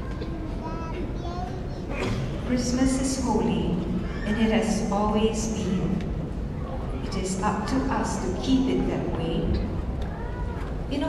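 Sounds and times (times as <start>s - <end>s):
woman speaking: 2.4s - 6.0s, 7.1s - 9.7s.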